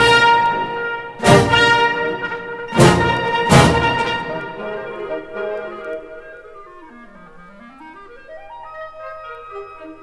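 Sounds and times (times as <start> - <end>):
solo clarinet: 0.0 - 10.0
wind band music: 0.0 - 10.0.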